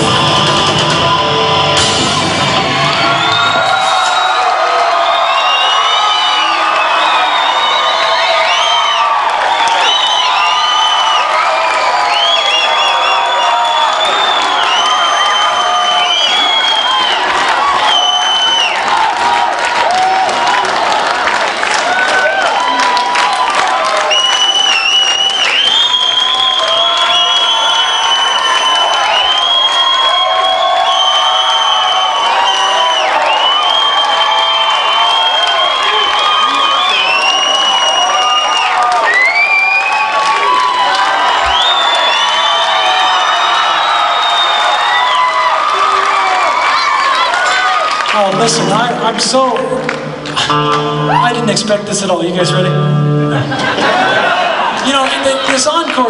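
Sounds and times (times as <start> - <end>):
crowd cheering and applauding: 0.0 - 56.0
high whoops and screams: 2.2 - 21.0, 21.8 - 48.2
guitar chord: 49.9 - 51.8, 52.4 - 53.5.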